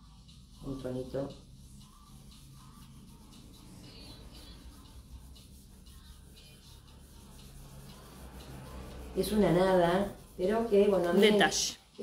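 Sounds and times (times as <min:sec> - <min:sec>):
faint background music: 0:00.0 - 0:12.0
cloth rubbing on wood: 0:05.1 - 0:11.7.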